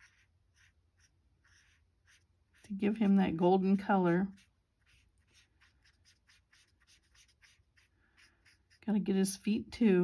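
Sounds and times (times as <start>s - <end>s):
marker scratching on cardstock: 0.0s - 2.9s, 4.0s - 8.9s.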